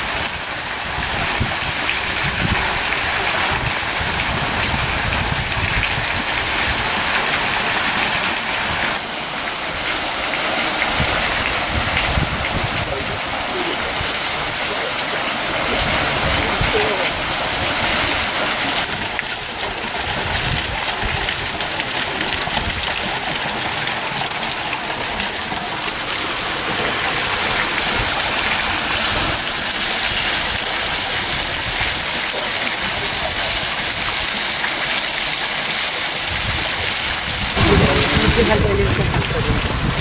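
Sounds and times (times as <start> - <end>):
rushing hiss: 0.0 - 18.9
low rumbles: 37.3 - 40.0.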